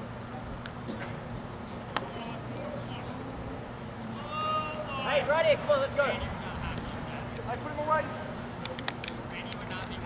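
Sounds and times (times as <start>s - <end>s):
distant voices calling out: 0.1s - 10.0s.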